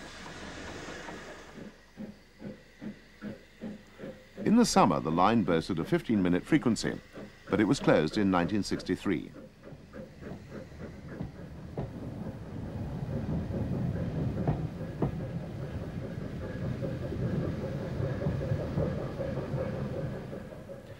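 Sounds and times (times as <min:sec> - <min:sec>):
train wheels clicking over rail joints: 0:00.0 - 0:20.9.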